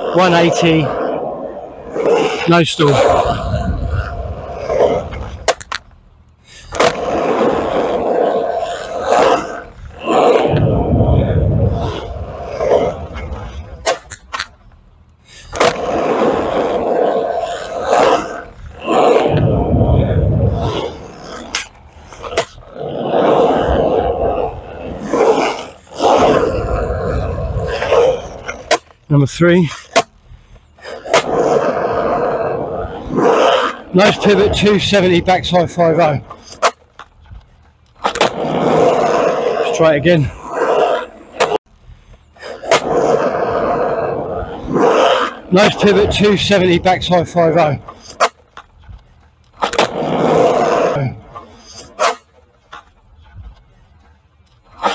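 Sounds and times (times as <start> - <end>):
skateboard clack: 0.0 - 14.8, 15.4 - 29.0, 29.6 - 41.6, 42.4 - 54.9
skateboard wheels rolling on concrete: 0.0 - 54.9
skateboard clacking on concrete: 4.5 - 6.0, 6.6 - 10.7, 12.3 - 14.7, 15.4 - 19.4, 36.0 - 39.3, 47.2 - 54.9.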